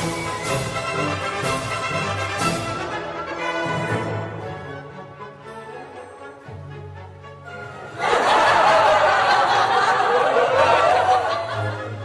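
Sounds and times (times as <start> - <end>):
background music: 0.0 - 12.0
group of people laughing: 7.9 - 12.0.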